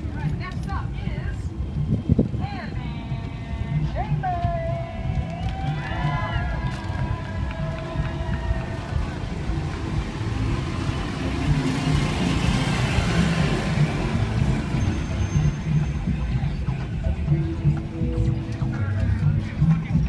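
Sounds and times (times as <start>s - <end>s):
wind buffeting microphone: 0.0s - 3.4s
faint music: 0.0s - 20.0s.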